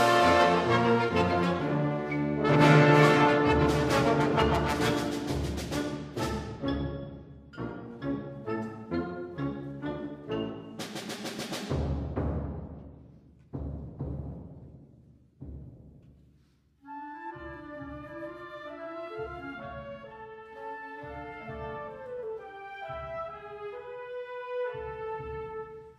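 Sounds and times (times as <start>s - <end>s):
brass chords: 0.0s - 6.9s
timpani strokes: 0.0s - 7.7s, 8.5s - 24.0s.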